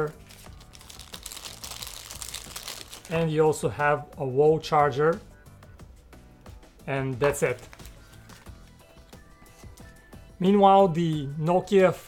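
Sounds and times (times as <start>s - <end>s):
plastic wrapping crinkling: 0.0s - 3.3s, 7.2s - 8.6s.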